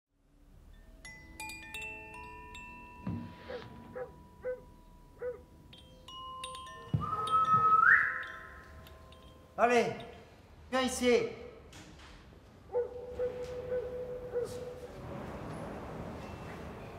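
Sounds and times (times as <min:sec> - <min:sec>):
overlapping chime-like tones: 0:00.7 - 0:10.4.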